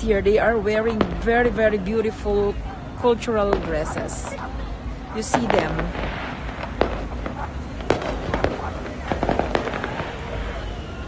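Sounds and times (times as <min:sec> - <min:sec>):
firecrackers cracking and popping: 0:05.2 - 0:11.0.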